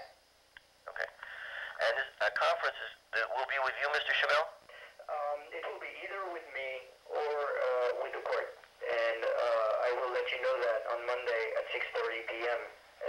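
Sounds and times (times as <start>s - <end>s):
person talking over telephone: 0.9s - 12.8s.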